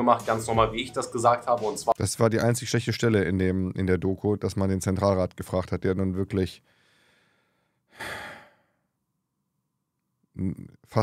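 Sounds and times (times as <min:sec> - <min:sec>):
man breathing: 0:06.6 - 0:08.9.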